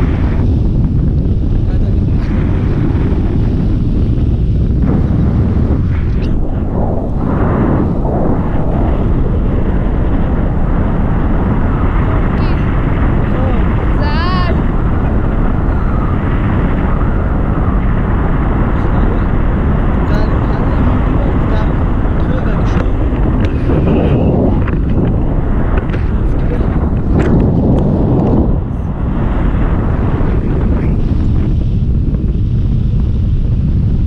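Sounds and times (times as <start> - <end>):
wind roar on microphone: 0.0 - 34.0.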